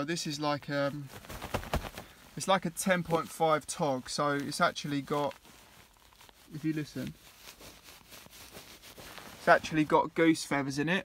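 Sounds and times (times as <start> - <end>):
duvet rustling: 0.1 - 11.0.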